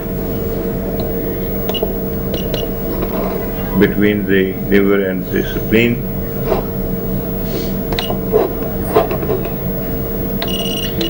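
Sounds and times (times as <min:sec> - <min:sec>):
electrical hum: 0:00.0 - 0:11.0
faint knocks: 0:07.5 - 0:09.8.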